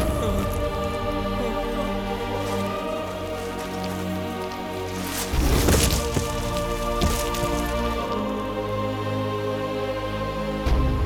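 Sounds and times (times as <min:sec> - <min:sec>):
light rain patter: 0:00.0 - 0:08.5
sustained orchestral chords: 0:00.0 - 0:11.0.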